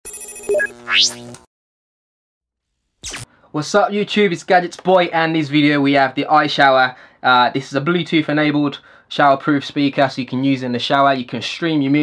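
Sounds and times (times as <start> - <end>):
ringing high electronic trill: 0.0 - 1.3.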